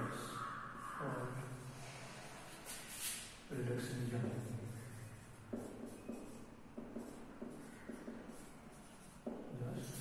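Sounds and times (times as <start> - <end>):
marker writing on whiteboard: 2.1 - 10.0.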